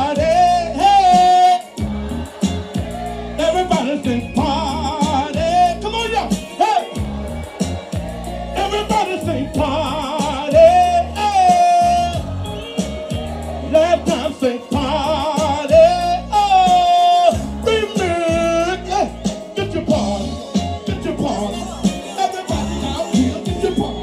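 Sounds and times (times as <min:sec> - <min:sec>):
man singing soul song: 0:00.0 - 0:01.8, 0:03.3 - 0:07.1, 0:08.5 - 0:24.0
backing music with bass and drums: 0:00.0 - 0:24.0.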